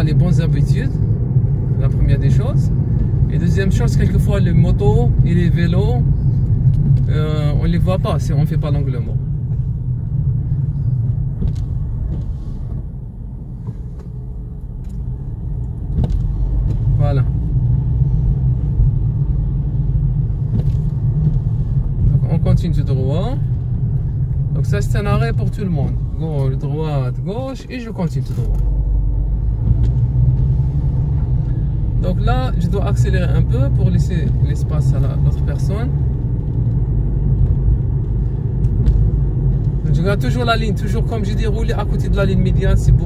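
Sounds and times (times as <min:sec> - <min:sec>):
car engine rumble: 0:00.0 - 0:43.0
tyres on the road: 0:00.0 - 0:43.0.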